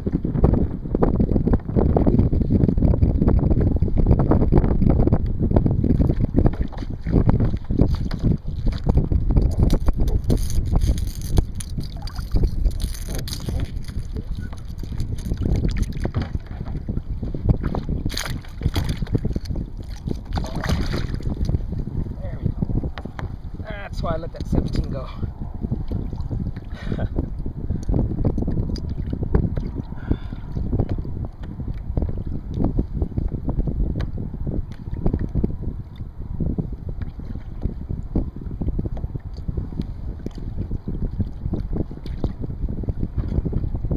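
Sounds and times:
wind buffeting microphone: 0.0 - 43.9
water slapping against kayak hull: 5.9 - 21.8, 36.9 - 43.8.

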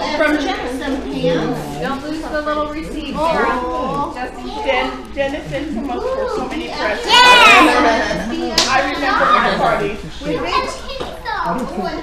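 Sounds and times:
adults' voices: 0.0 - 12.0
children chattering and calling out: 0.0 - 12.0.

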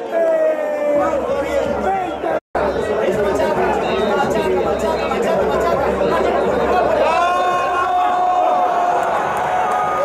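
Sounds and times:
stadium crowd talking and shouting: 0.0 - 10.0.

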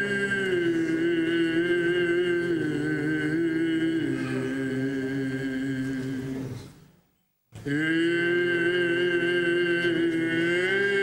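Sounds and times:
men chanting: 0.0 - 6.6, 7.6 - 11.0.

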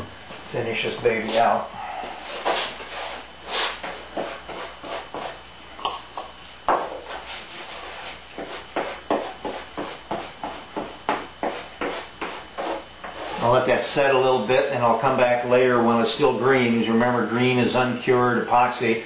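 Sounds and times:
brush strokes scratchy swish: 2.2 - 5.4, 7.0 - 8.7.

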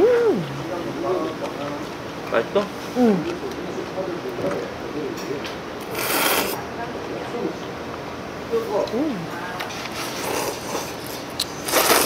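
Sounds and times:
person slurping noodles: 5.9 - 6.6.

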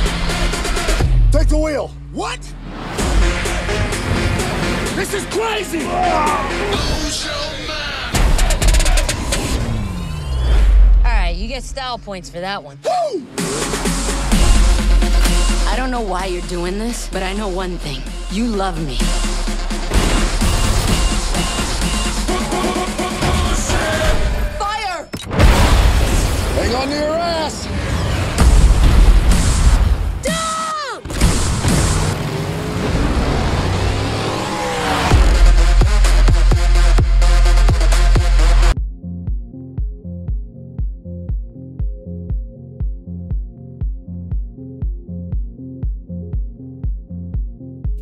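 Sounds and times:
car engine revving: 0.0 - 12.4, 31.2 - 38.8
explosion hit: 25.3 - 26.8, 28.1 - 30.2.

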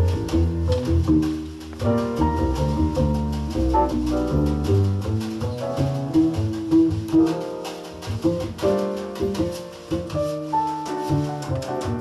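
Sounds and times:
double bass: 0.0 - 12.0
drum kit strokes: 0.0 - 12.0
grand piano: 0.0 - 12.0.

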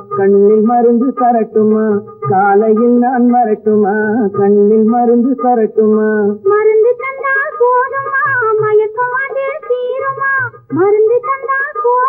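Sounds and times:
man singing: 0.0 - 6.4.

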